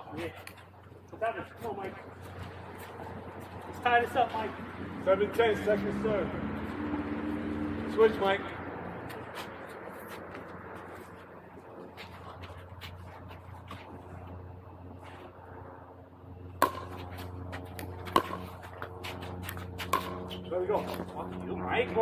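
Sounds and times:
steady low hum: 0.0s - 22.0s
paddle hitting pickleball: 16.6s - 21.0s.

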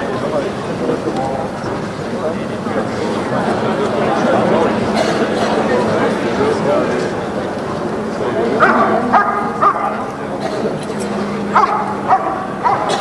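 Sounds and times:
dog barking: 8.6s - 10.1s, 11.5s - 13.0s.

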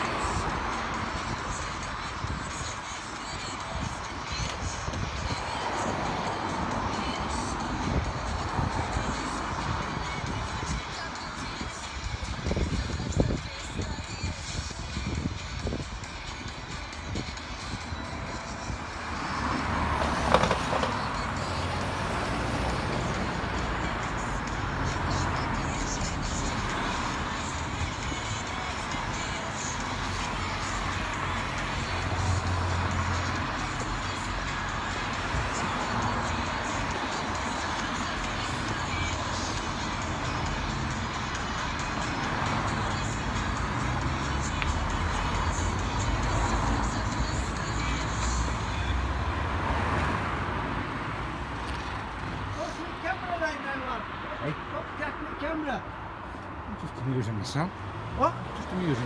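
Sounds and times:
road traffic rumble and hiss: 0.0s - 59.0s.

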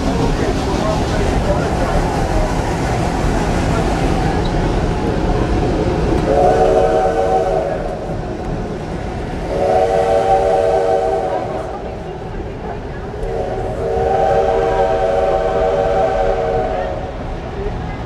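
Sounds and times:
train rumbling along track: 0.0s - 18.0s
steam locomotive whistle: 6.2s - 8.0s, 9.5s - 11.8s, 13.3s - 17.2s.

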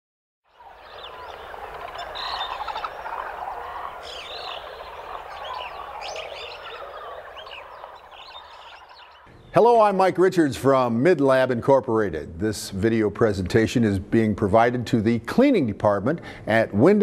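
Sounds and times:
chorus of frogs: 0.5s - 9.3s.

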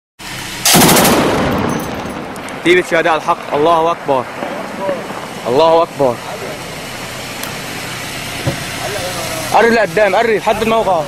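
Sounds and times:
heavy machine gun burst: 0.6s - 2.7s
gunfire echo: 0.6s - 5.9s.

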